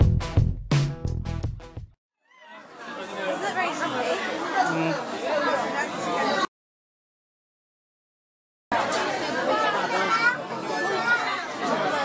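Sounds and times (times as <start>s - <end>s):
indistinct chatter of people: 2.3s - 6.5s, 8.7s - 12.0s.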